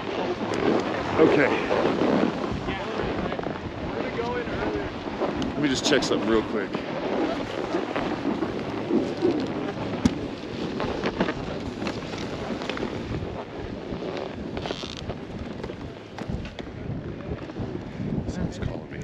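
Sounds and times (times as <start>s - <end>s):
wind buffeting microphone: 0.0s - 19.0s
rustling: 6.9s - 13.4s.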